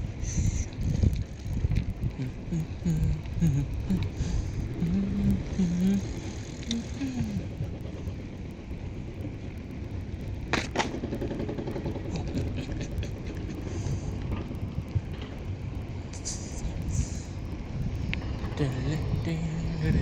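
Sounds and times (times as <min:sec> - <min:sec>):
wind buffeting microphone: 0:00.0 - 0:20.0
person's voice: 0:02.2 - 0:07.5, 0:16.2 - 0:17.3, 0:18.6 - 0:20.0.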